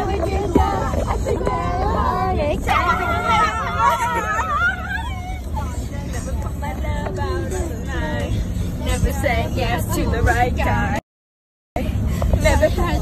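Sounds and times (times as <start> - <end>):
car driving rumble from inside: 0.0 - 11.0, 11.8 - 13.0
girls laughing and shrieking: 2.6 - 5.5.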